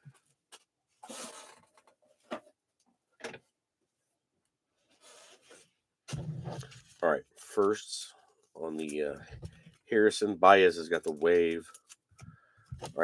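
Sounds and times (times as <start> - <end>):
trading cards rustling: 8.6 - 9.8.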